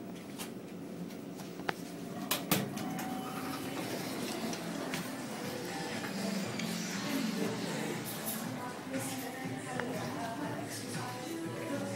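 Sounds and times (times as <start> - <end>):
elevator car running: 2.0 - 9.0
elevator doors sliding open: 2.2 - 8.2
background music: 3.2 - 11.9.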